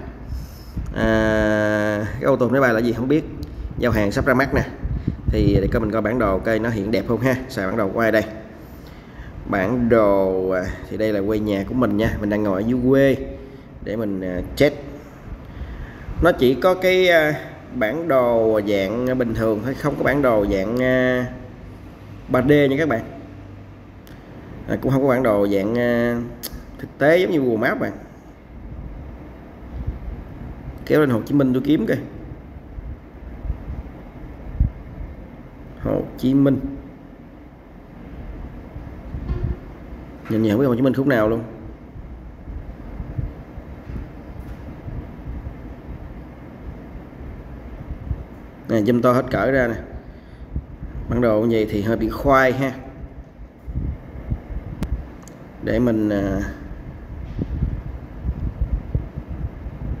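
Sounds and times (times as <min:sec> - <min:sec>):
low background rumble: 0:00.0 - 1:00.0
wind buffeting microphone: 0:03.3 - 0:07.3, 0:32.4 - 0:35.2, 0:38.4 - 0:40.0, 0:41.7 - 0:48.4, 0:49.8 - 0:52.4, 0:53.0 - 0:55.2, 0:56.6 - 1:00.0.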